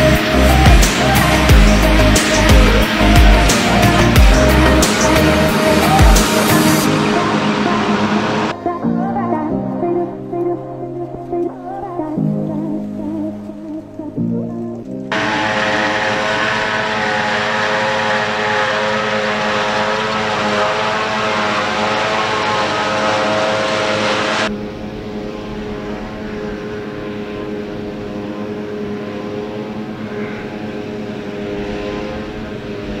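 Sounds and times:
forage harvester droning with whine: 0.0 - 8.6, 14.8 - 33.0.

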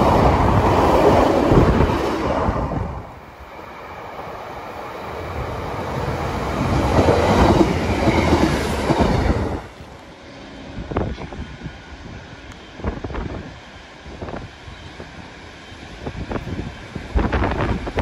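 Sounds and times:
diesel train passing: 0.0 - 18.0.

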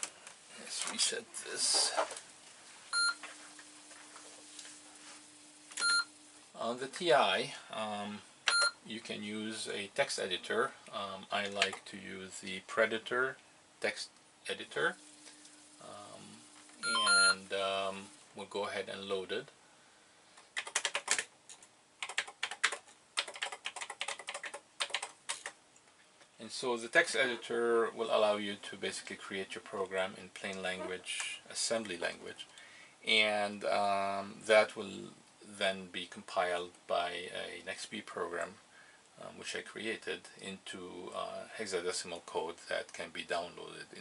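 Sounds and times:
faint low hum: 0.0 - 20.6
short electronic beeps: 2.9 - 3.2, 5.8 - 6.1, 8.5 - 8.8, 16.8 - 17.4.

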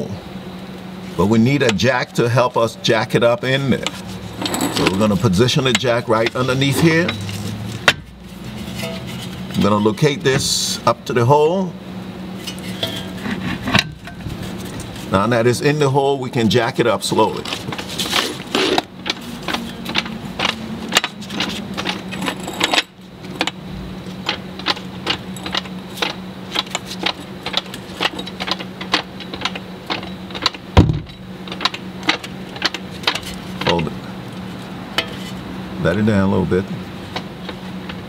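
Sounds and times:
steady low hum: 0.0 - 38.0
jack clicking: 17.3 - 33.9.

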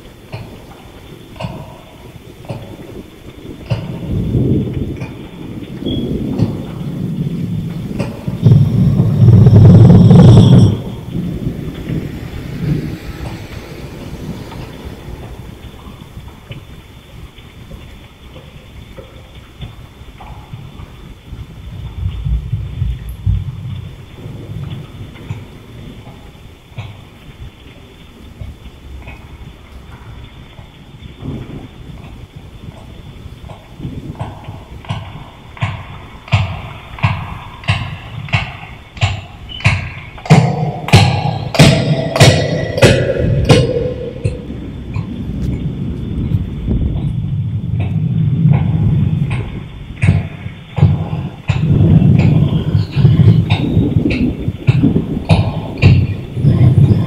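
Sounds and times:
steady rain: 0.0 - 57.0
thunder rumbling: 0.0 - 57.0.

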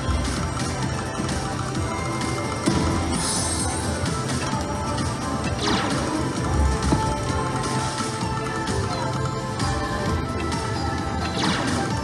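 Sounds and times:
slot machine game music: 0.0 - 12.0.

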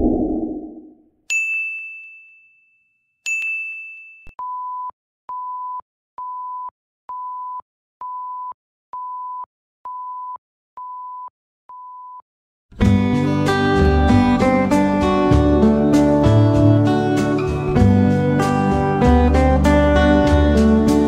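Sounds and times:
whoosh: 0.0 - 0.9
bright bell-like dings: 1.3 - 4.3.

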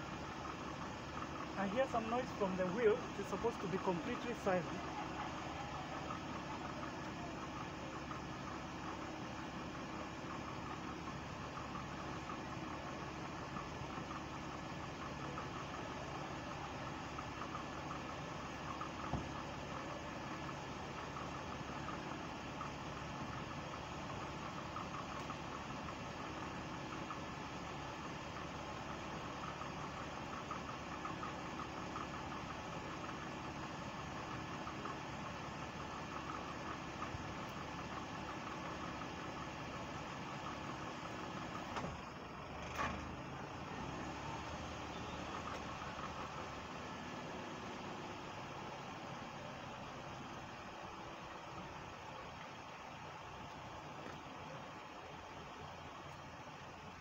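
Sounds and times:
car engine running: 0.0 - 57.0
noise from wheel hub: 0.0 - 57.0.

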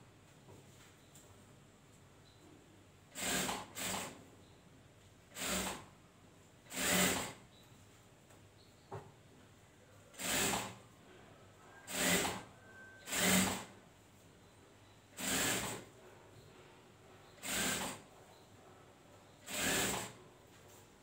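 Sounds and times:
industrial sewing machine stitching: 3.1 - 4.2, 5.3 - 5.9, 6.7 - 7.4, 10.2 - 10.8, 11.9 - 13.8, 15.2 - 15.9, 17.4 - 18.0, 19.4 - 20.2.

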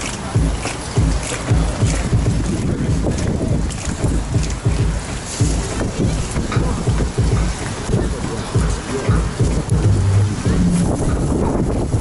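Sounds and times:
dance music beat: 0.0 - 11.6
wind buffeting microphone: 0.0 - 12.0.

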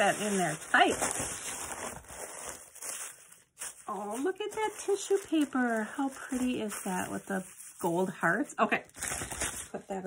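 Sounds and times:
plastic mailer rustling: 0.0 - 9.8.

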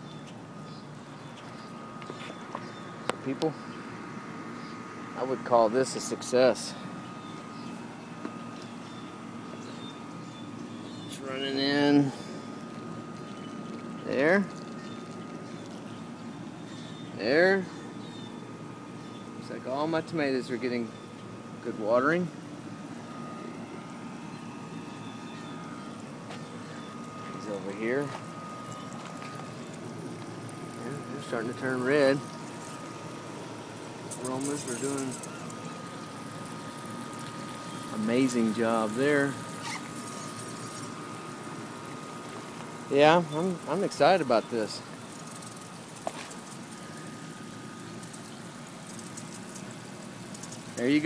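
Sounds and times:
water trickling: 23.7 - 51.0.

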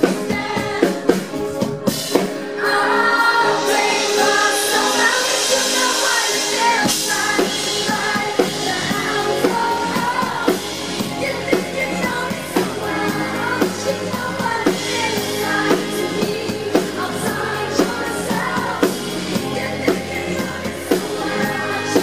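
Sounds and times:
band with drums playing: 0.0 - 2.6, 3.4 - 22.0
woman singing into a microphone: 2.6 - 22.0.

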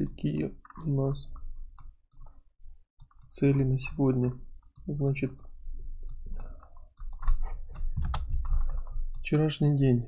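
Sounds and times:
computer keys clicking: 3.0 - 3.5, 6.0 - 9.4.

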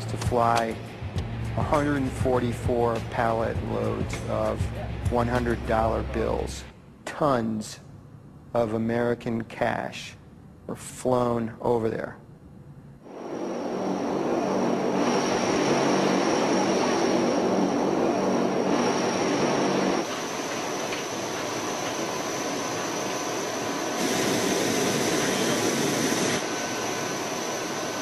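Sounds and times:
aircraft engines droning: 0.0 - 28.0.

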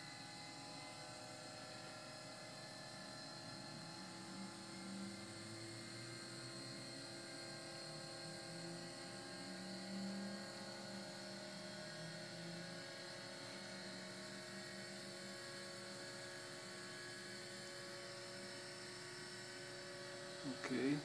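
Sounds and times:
faint electric hum and whine: 0.0 - 21.0.

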